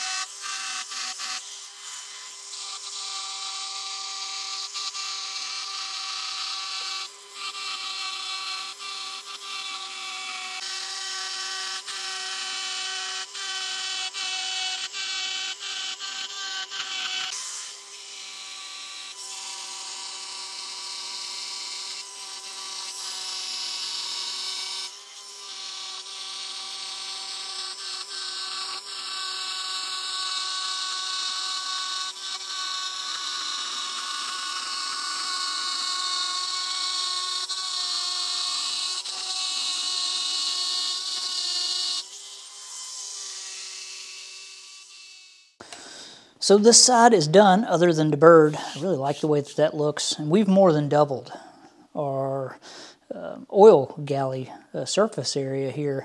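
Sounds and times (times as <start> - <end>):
air die grinder grinding metal: 0.0 - 56.0.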